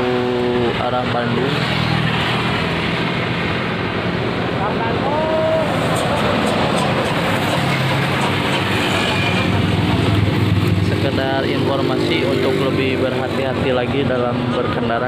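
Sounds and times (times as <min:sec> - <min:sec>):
highway traffic hum and tyre noise: 0:00.0 - 0:15.0
vehicle engine: 0:00.0 - 0:15.0
distant talk: 0:04.6 - 0:08.4.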